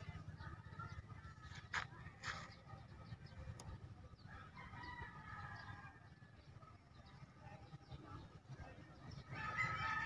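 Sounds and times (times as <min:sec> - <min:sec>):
faint rooster crowing: 0:04.2 - 0:06.2, 0:09.3 - 0:10.0.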